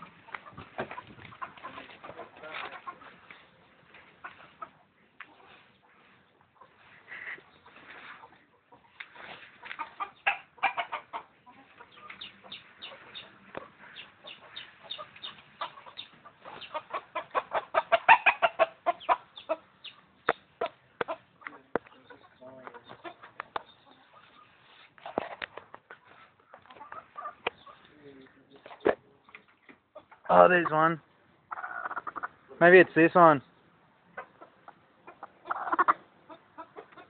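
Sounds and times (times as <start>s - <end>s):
chickens clucking: 0.0s - 37.0s.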